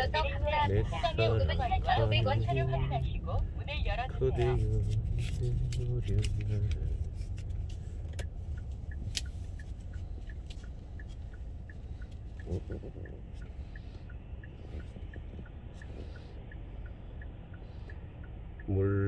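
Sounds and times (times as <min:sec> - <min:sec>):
car engine rumbling: 0:00.0 - 0:19.0
turn signal ticking: 0:00.0 - 0:19.0.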